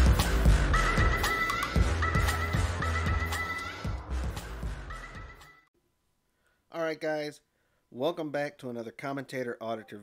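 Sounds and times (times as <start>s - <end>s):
intro music with regular beat: 0.0s - 5.6s.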